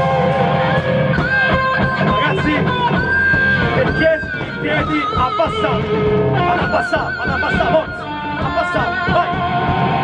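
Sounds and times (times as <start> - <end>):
distorted electric guitars: 0.0 - 10.0
drums: 0.0 - 10.0.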